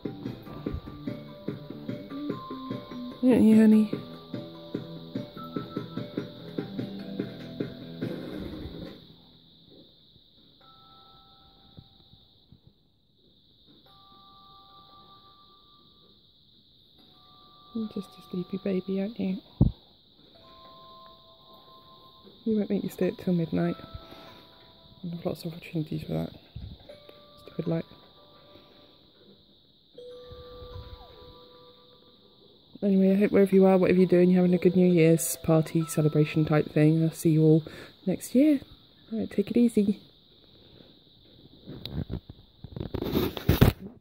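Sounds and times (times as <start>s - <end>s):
faint pair of steady tones: 0.0s - 42.9s
steady hiss: 37.1s - 44.0s.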